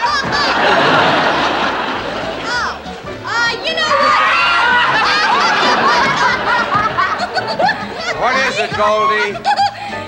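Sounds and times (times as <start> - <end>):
studio audience laughter: 0.0 - 2.6, 4.5 - 9.8.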